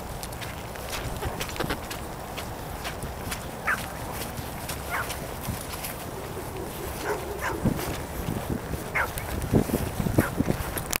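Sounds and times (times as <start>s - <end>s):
footsteps through grass: 0.0s - 11.0s.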